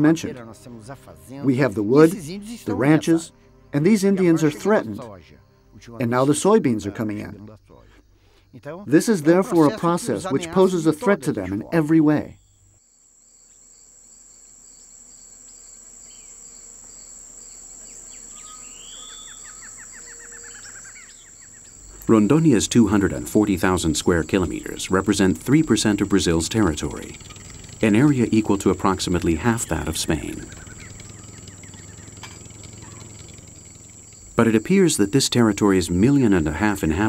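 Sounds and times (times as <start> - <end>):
high-pitched insect drone: 0.0 - 12.0, 12.8 - 37.0
low steady hum: 0.0 - 12.8, 17.2 - 37.0
birds calling: 17.8 - 37.0.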